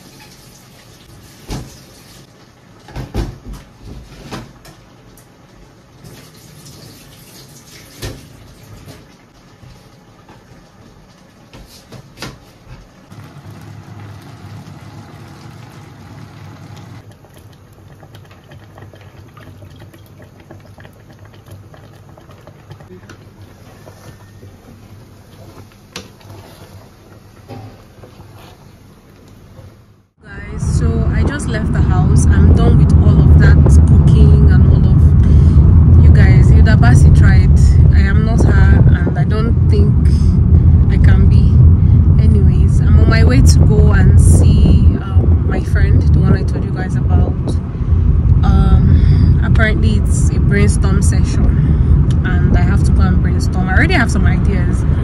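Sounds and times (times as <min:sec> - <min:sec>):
pot boiling: 0:00.0 - 0:55.0
soup simmering with pops: 0:12.7 - 0:28.4
low steady hum: 0:12.7 - 0:55.0
woman talking: 0:30.2 - 0:41.6, 0:42.2 - 0:47.6, 0:48.4 - 0:55.0.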